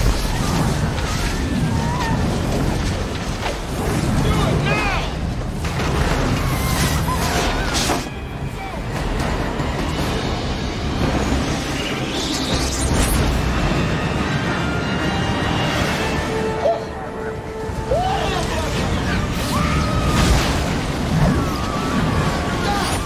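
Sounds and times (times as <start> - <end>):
people screaming and shouting: 0.0 - 3.2, 5.9 - 10.6, 11.6 - 23.0
dramatic music: 0.0 - 23.0.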